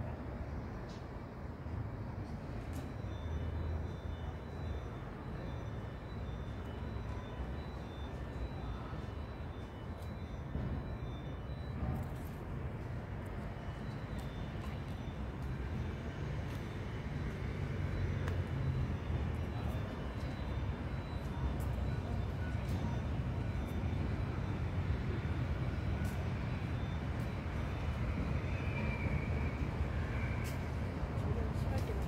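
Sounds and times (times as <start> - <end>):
urban background rumble: 0.0 - 32.0.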